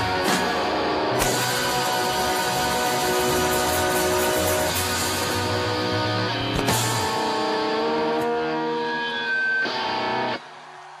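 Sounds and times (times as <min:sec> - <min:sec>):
rock band electric guitar chord: 0:00.0 - 0:10.4.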